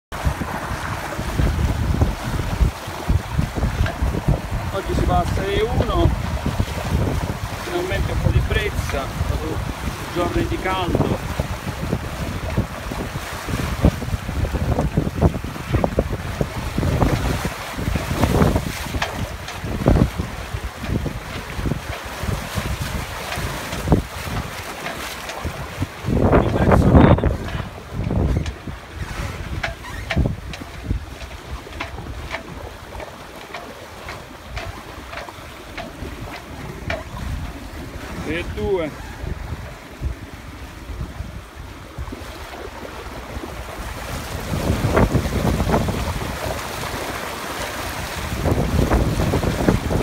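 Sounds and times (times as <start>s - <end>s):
water splashing along hulls: 0.1s - 50.0s
wind buffeting microphone: 0.1s - 50.0s.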